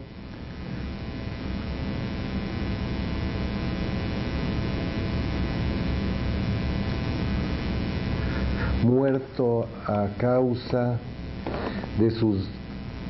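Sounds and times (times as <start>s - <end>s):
electrical mains hum and buzz: 0.0s - 13.0s.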